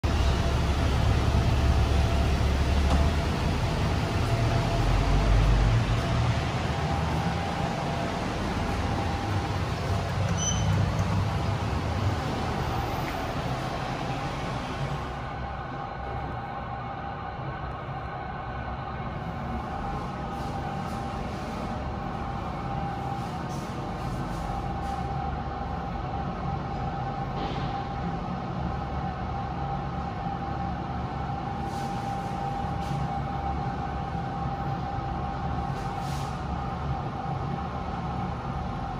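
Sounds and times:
lift running low rumble: 0:00.0 - 0:38.9
thin high whine: 0:00.1 - 0:16.8.

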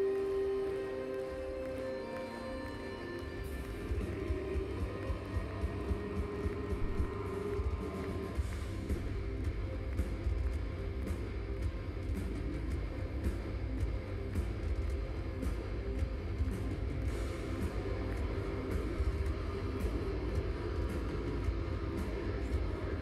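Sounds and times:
drum beat: 0:03.4 - 0:23.0
metal band playing loud: 0:03.4 - 0:23.0.

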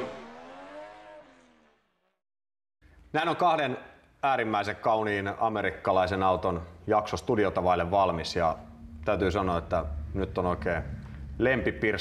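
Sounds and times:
car engine revving: 0:00.0 - 0:02.1.

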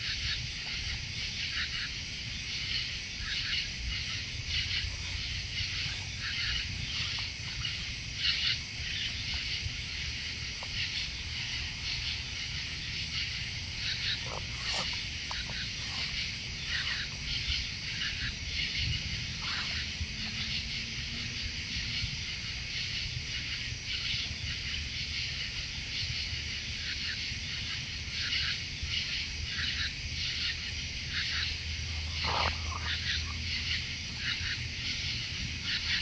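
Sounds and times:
night insects chorus: 0:00.0 - 0:36.0.

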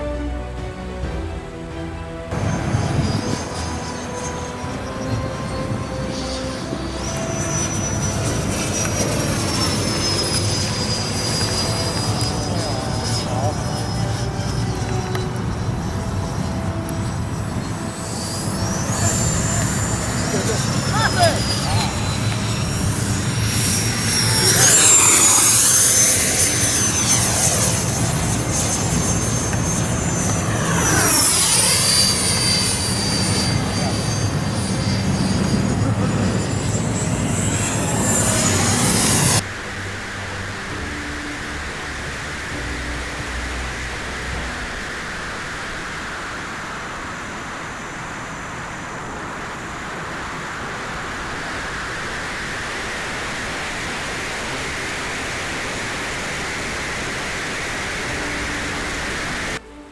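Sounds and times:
model jet engine whine: 0:01.9 - 0:59.9.

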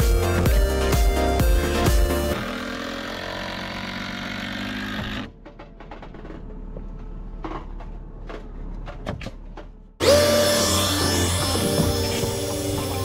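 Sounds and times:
electronic background music: 0:00.0 - 0:02.4, 0:10.0 - 0:13.0
cordless drill bursts: 0:10.0 - 0:13.0.

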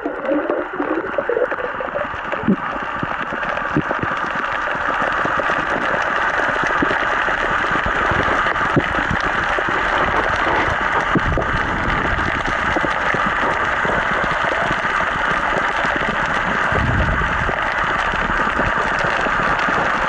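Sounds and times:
muffled underwater hiss: 0:00.0 - 0:20.0
low rumbles: 0:16.6 - 0:18.6.

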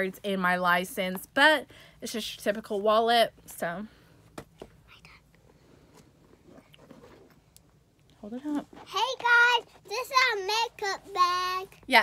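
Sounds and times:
soft whisper: 0:04.8 - 0:06.0.

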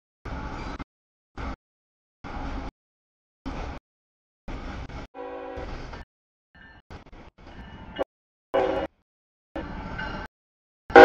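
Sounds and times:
passing train noise: 0:02.2 - 0:02.7, 0:03.5 - 0:03.8, 0:04.5 - 0:06.0, 0:08.6 - 0:09.0, 0:09.6 - 0:10.3
locomotive horn blast: 0:05.2 - 0:05.7, 0:08.6 - 0:09.0.

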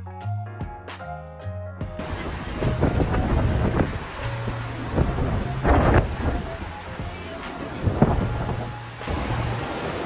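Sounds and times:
wind buffeting microphone: 0:01.9 - 0:10.0.

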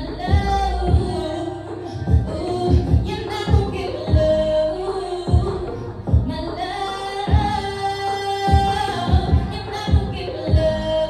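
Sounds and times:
backing beat: 0:00.0 - 0:11.0
woman singing into microphone: 0:00.0 - 0:11.0
kick drum thumps: 0:05.3 - 0:06.4, 0:08.5 - 0:10.8.

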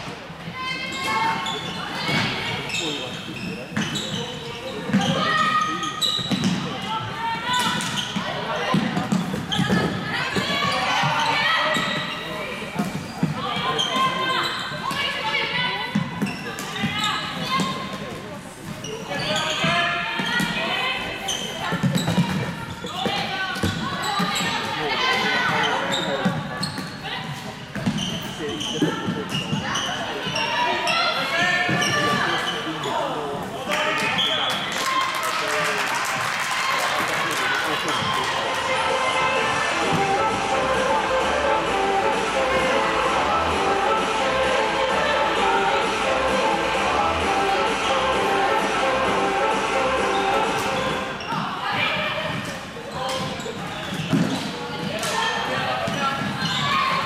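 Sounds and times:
voices calling and talking: 0:00.0 - 0:57.0.

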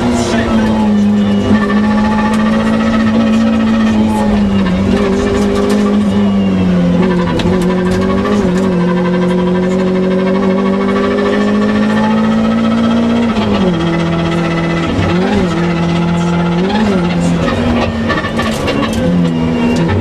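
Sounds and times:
car engine revving hard: 0:00.0 - 0:20.0.

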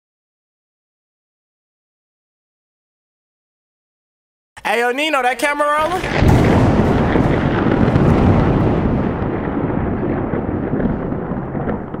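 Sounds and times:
explosion-like rumble: 0:05.8 - 0:12.0.

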